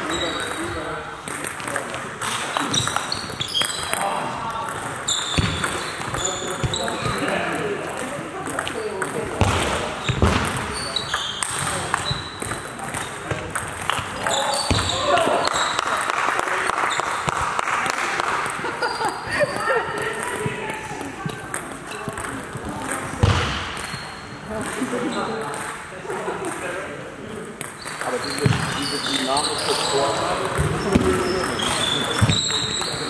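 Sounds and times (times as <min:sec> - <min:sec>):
heavy thud echoing in a hall: 0:09.3 - 0:10.8, 0:23.1 - 0:24.0.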